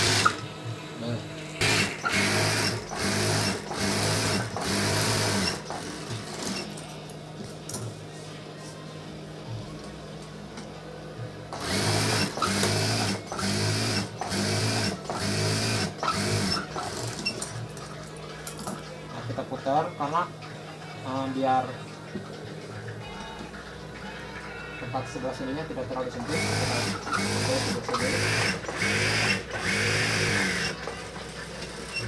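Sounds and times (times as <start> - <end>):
sewing machine stitching: 1.6 - 6.7, 11.6 - 17.5, 26.2 - 31.0.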